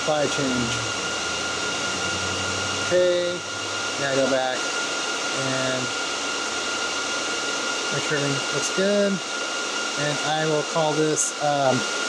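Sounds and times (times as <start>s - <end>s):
server cooling fans whining: 0.0s - 12.0s.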